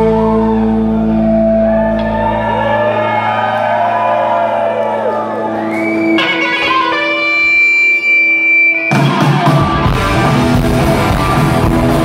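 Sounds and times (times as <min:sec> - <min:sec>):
audience shouting and whooping: 0:00.0 - 0:07.2.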